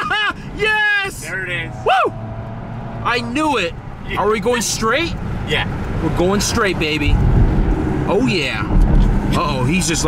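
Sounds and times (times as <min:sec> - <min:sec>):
car engine drone and road noise: 0:00.0 - 0:10.0
voices talking in a car: 0:00.0 - 0:10.0.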